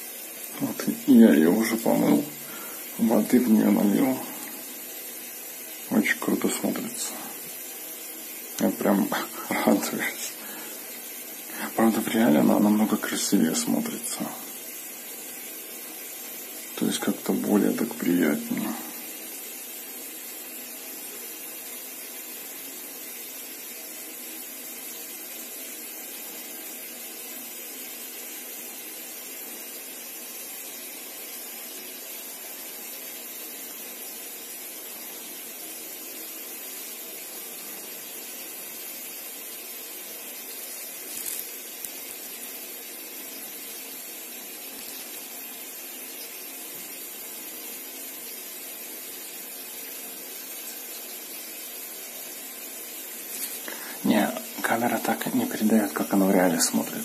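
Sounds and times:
steady background hiss: 0:00.0 - 0:57.0.

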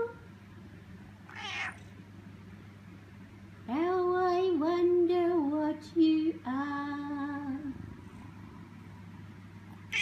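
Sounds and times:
cat meowing: 0:01.3 - 0:01.8.

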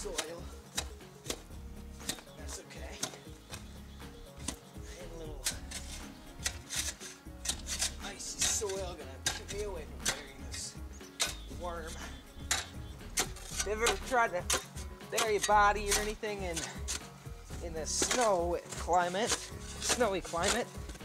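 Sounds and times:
shovel chopping and scraping snow: 0:00.0 - 0:03.8, 0:04.4 - 0:21.0.

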